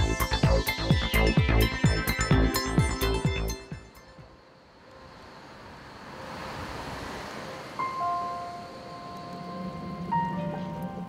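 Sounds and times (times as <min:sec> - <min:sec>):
soft whoosh of noise: 0:04.4 - 0:11.0.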